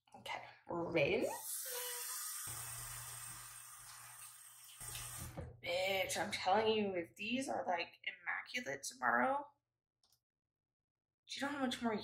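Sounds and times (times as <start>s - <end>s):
tap water running: 1.0s - 6.0s.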